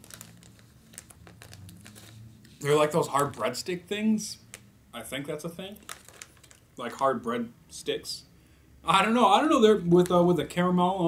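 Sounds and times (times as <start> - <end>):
plastic snack packet crinkling: 0.0 - 3.8, 4.4 - 4.7, 5.7 - 7.0, 9.8 - 10.5.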